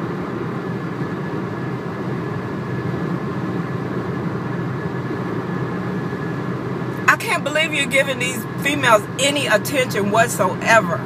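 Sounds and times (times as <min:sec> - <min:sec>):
car interior engine rumble: 0:01.1 - 0:11.0.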